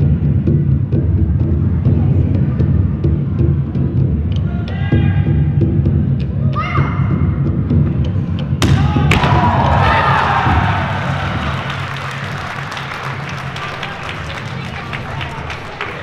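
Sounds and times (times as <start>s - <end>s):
background music with bass: 0.0s - 16.0s
voices cheering: 8.7s - 16.0s.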